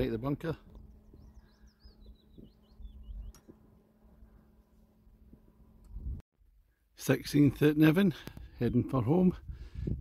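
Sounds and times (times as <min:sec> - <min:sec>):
songbird chirping: 0:00.5 - 0:04.6
wind on microphone: 0:09.4 - 0:10.0.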